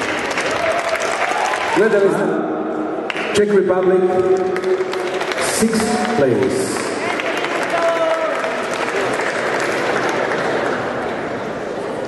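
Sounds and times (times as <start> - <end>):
audience applauding: 0.0 - 1.8, 4.4 - 11.4.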